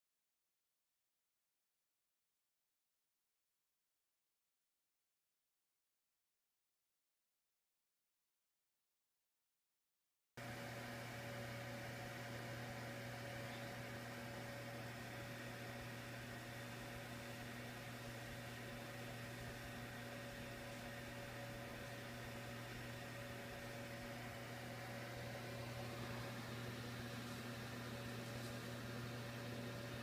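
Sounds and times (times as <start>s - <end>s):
heater blower fan humming: 10.4s - 30.0s.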